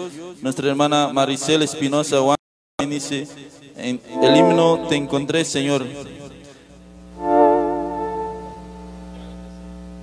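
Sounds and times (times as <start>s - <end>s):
electronic keyboard chord with vibrato: 4.1s - 5.3s, 7.2s - 9.0s
low hum: 7.0s - 9.2s.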